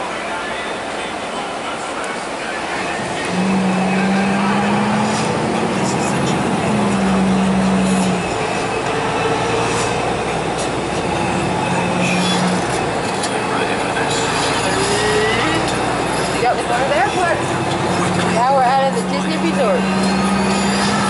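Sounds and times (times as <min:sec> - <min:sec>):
bus engine: 0:00.0 - 0:21.0.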